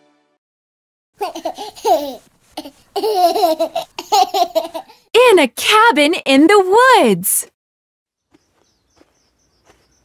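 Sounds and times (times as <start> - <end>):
young child giggling: 1.2 - 5.0.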